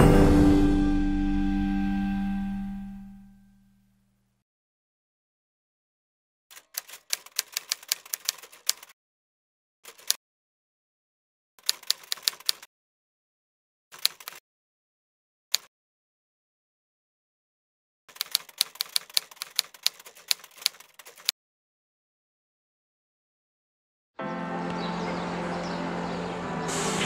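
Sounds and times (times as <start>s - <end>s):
typewriter keys clacking: 6.5s - 8.9s, 9.9s - 10.2s, 11.6s - 12.7s, 14.0s - 14.4s, 18.1s - 21.3s.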